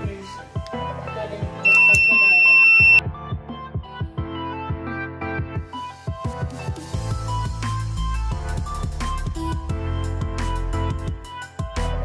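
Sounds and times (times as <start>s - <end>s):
background music: 0.0s - 12.0s
high-pitched alarm buzzer: 1.7s - 3.0s.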